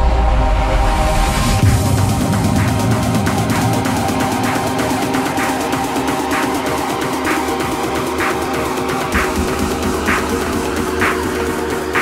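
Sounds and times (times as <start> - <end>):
progressive house music: 0.8 - 12.0.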